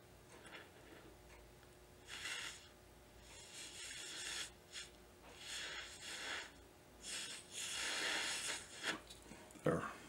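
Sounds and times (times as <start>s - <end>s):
breath blown through blowpipe: 2.0s - 9.0s.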